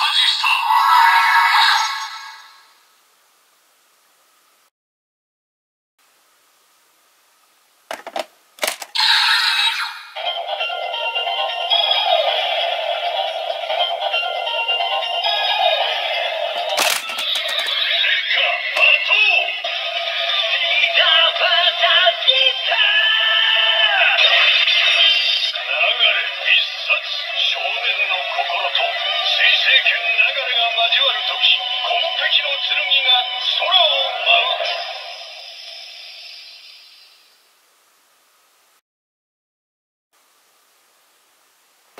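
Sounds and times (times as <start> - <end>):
recorded announcer voice: 0.0 - 1.1, 18.4 - 19.6, 25.5 - 35.0
plastic toy clicks: 7.9 - 9.0, 16.7 - 17.8
electronic music from toy speaker: 8.6 - 35.4.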